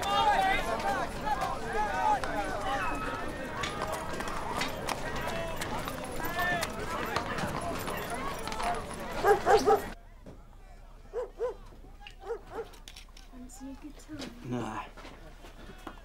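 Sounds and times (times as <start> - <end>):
indistinct street voices: 0.0 - 16.0
dog barking: 9.2 - 10.0, 11.1 - 12.8.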